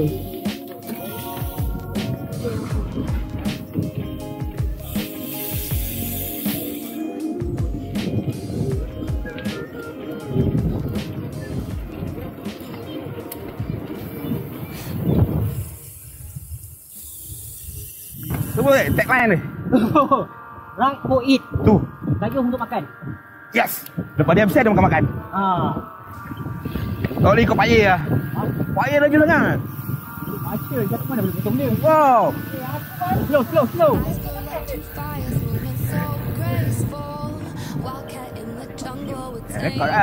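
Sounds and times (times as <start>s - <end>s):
wind buffeting microphone: 1.6s - 4.9s, 7.4s - 40.0s
bicycle tyres rolling on asphalt: 9.2s - 19.4s, 26.9s - 38.3s.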